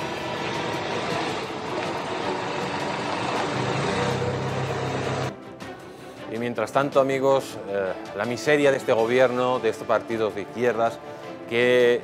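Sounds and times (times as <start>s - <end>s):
heavy vehicle engine running: 0.0s - 5.3s
street noise: 0.0s - 5.3s.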